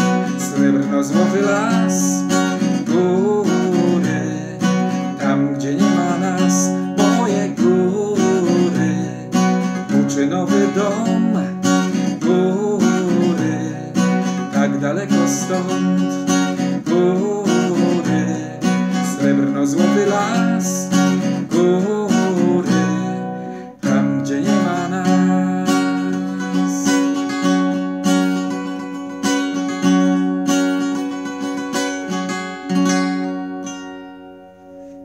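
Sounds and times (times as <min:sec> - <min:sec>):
man singing: 0:00.0 - 0:27.4
acoustic guitar strumming: 0:00.0 - 0:35.0.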